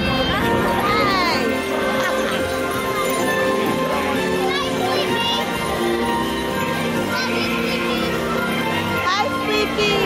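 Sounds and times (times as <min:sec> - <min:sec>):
children's voices: 0:00.0 - 0:10.0
crowd chatter: 0:00.0 - 0:10.0
parade music over loudspeakers: 0:00.0 - 0:10.0.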